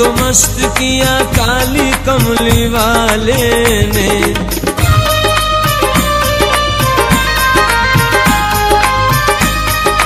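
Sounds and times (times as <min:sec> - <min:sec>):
hand drum beat: 0:00.0 - 0:10.0
harmonium tones: 0:00.0 - 0:10.0.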